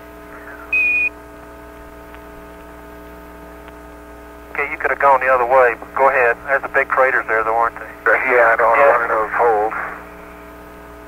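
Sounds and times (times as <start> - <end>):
radio hum and hiss: 0.2 - 11.0
static burst: 6.0 - 10.1.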